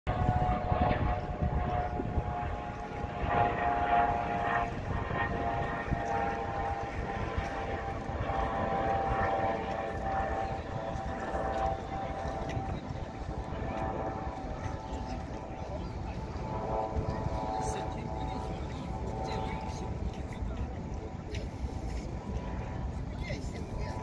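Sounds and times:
distant engine drone: 0.1s - 24.0s
wind rumbling on microphone: 0.1s - 24.0s.

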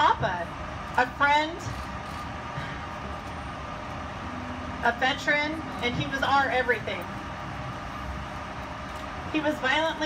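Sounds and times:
city background rumble: 0.0s - 10.0s
woman speaking: 4.8s - 7.1s, 9.3s - 10.0s.

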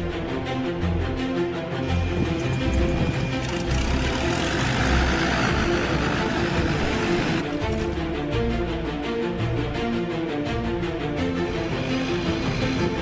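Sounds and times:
background music: 0.0s - 13.0s
propeller engine rushing: 2.2s - 8.0s.

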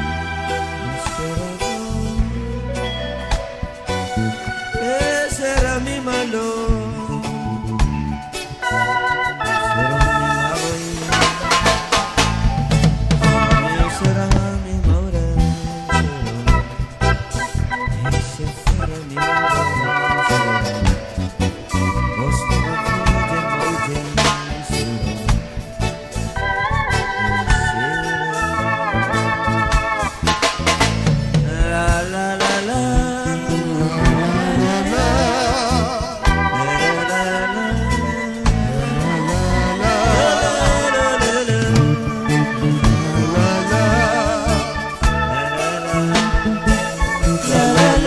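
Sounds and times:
drums: 0.0s - 48.0s
organ chords on keyboard: 0.0s - 48.0s
man singing into microphone: 0.7s - 2.7s, 4.8s - 7.8s, 9.6s - 11.8s, 13.4s - 16.9s, 17.9s - 21.0s, 21.7s - 25.5s, 27.4s - 28.7s, 31.4s - 48.0s.

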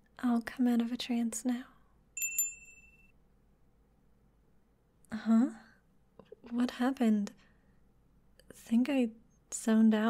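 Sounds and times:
small bell ding: 2.2s - 3.1s.

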